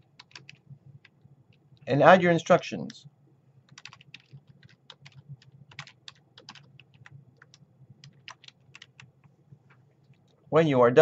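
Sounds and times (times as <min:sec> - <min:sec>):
keyboard typing: 0:00.1 - 0:01.2, 0:03.7 - 0:10.4.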